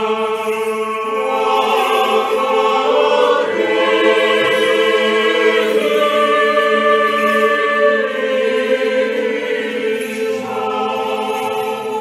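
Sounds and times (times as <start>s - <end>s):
choir singing slow chant: 0.0s - 12.0s.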